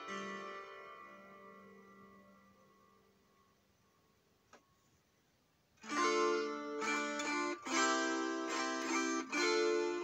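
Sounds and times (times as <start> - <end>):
plucked psaltery chord ringing: 0.0 - 3.1, 5.8 - 10.0.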